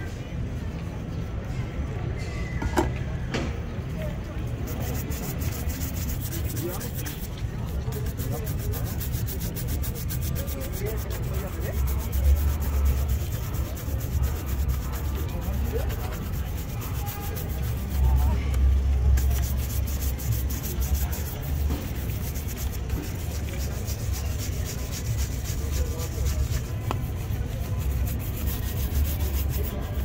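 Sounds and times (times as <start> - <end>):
brush scrubbing leather shoe: 4.5 - 18.5, 19.1 - 30.0.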